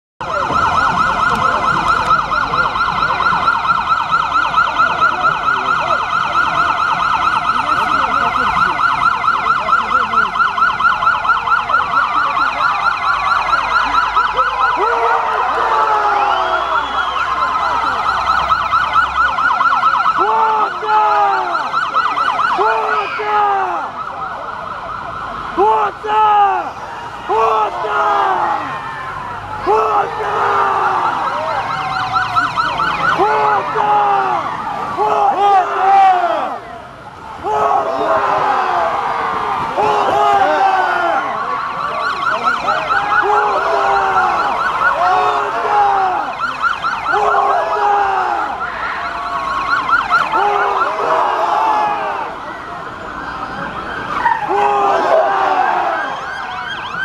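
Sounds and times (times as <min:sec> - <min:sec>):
police sirens yelping: 0:00.2 - 0:57.0
siren whoops: 0:00.2 - 0:57.0.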